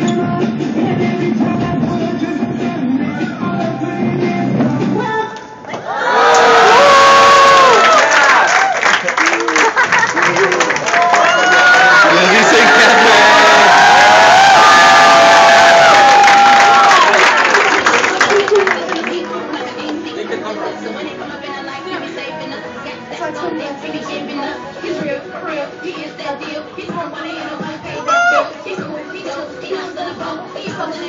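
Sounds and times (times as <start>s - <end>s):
audience cheering and screaming: 5.8s - 8.9s, 10.8s - 18.6s
crowd chatter in a large hall: 17.0s - 31.0s.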